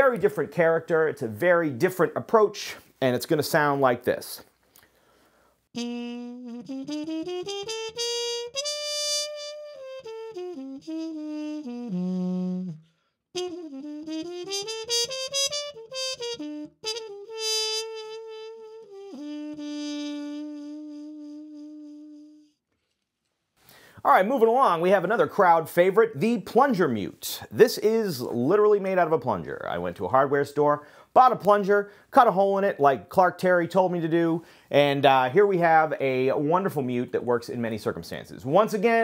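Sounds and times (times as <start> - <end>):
muted trumpet melody: 5.7 - 22.6.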